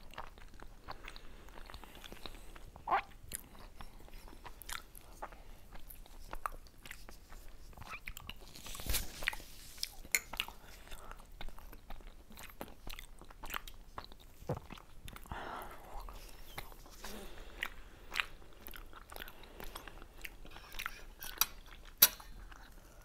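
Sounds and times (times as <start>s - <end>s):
chewing with wet mouth clicks: 0.0s - 15.3s, 15.9s - 23.0s.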